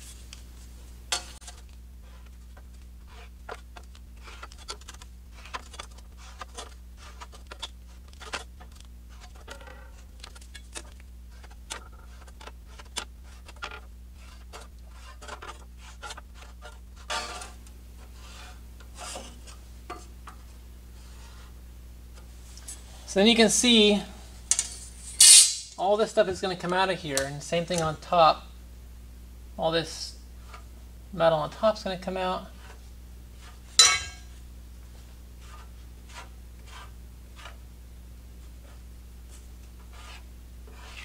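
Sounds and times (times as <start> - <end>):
steady low hum: 0.0 - 41.0
marker scratching on steel: 14.2 - 17.4, 35.4 - 37.6, 39.8 - 41.0.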